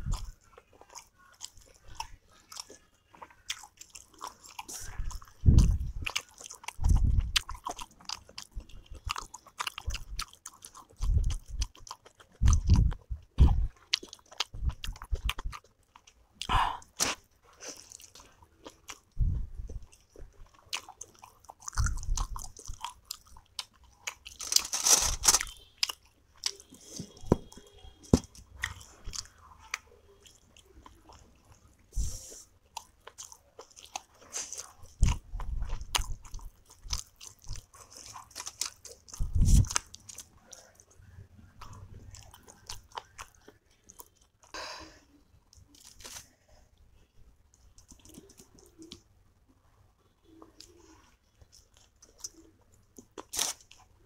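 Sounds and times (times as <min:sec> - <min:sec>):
chewing with mouth clicks: 0:00.0 - 0:44.6, 0:47.5 - 0:49.1, 0:50.2 - 0:53.9.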